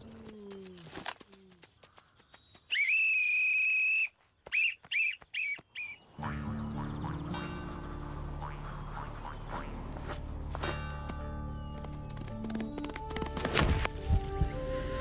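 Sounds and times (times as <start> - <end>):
whistle blasts: 2.7 - 6.0
background music: 6.2 - 15.0.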